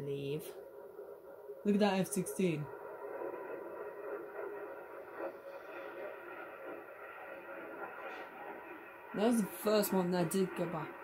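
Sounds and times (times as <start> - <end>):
muffled jet rumble from tv: 0.0 - 11.0.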